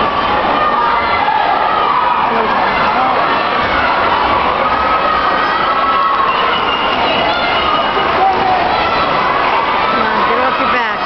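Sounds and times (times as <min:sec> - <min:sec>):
crowd yelling and cheering: 0:00.0 - 0:11.0.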